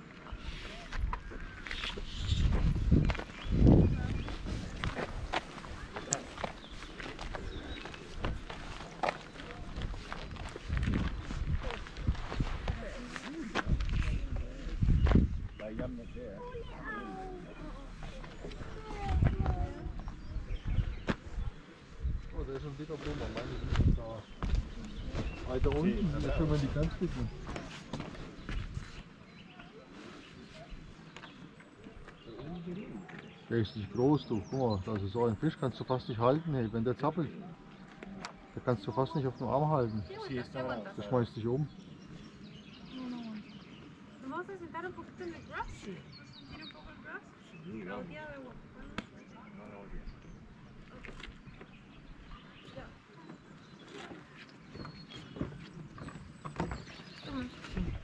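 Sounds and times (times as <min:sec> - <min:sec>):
faint outdoor background: 0:00.0 - 0:58.0
footsteps: 0:00.1 - 0:15.9.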